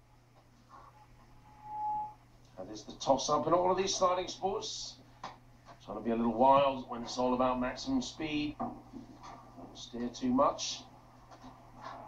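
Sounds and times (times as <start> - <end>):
steady pure tone: 0.0 - 5.1
faint background hum: 0.0 - 12.0.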